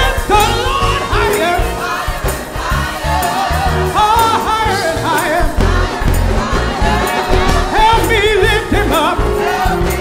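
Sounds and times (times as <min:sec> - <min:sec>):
man singing lead: 0:00.0 - 0:02.0, 0:03.7 - 0:06.1, 0:06.8 - 0:10.0
gospel choir singing: 0:00.0 - 0:10.0
instrumental accompaniment with beat: 0:00.0 - 0:10.0.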